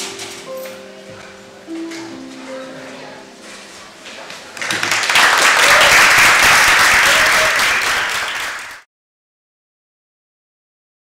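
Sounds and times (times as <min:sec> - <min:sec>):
audience applauding: 0:04.6 - 0:08.9.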